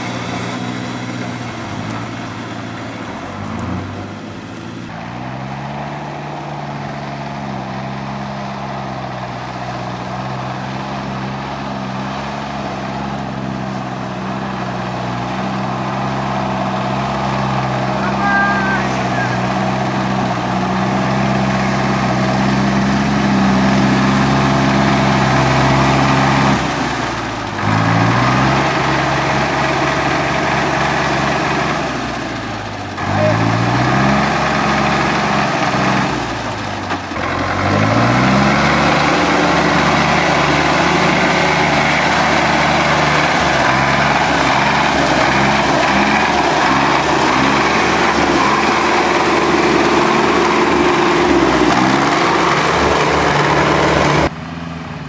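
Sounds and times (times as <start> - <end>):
truck engine revving: 0.0 - 55.0.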